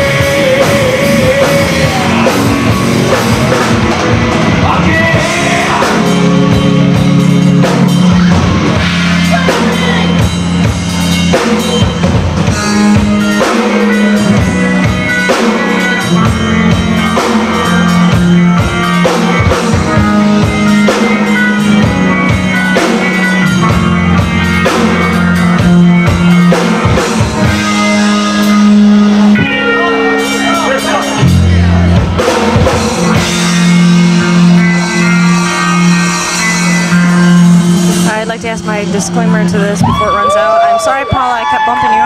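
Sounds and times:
drum kit hits: 0.0s - 40.0s
bass guitar notes: 0.0s - 42.0s
electric guitars: 0.0s - 42.0s.

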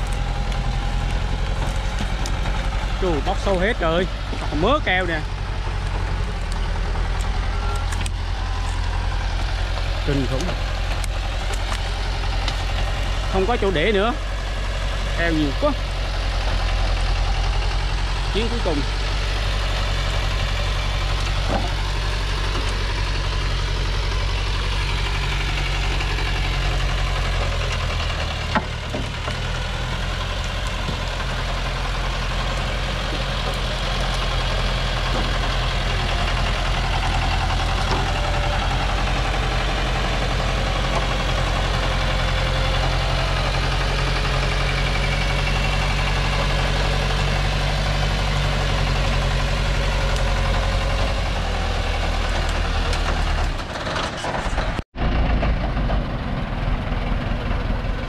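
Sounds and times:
truck diesel engine at low revs: 0.0s - 58.0s.

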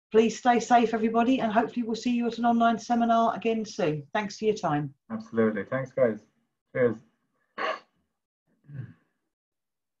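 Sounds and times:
man sighing or murmuring: 8.7s - 9.0s.

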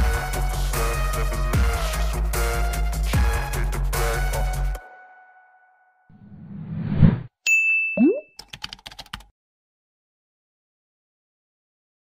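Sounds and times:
rising swoop: 6.2s - 7.3s
whoosh: 6.2s - 7.3s
bright ding: 7.5s - 8.4s.

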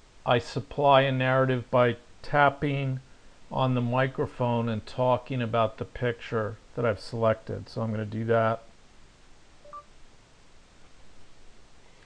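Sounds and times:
two-tone electronic beep: 9.6s - 9.9s.

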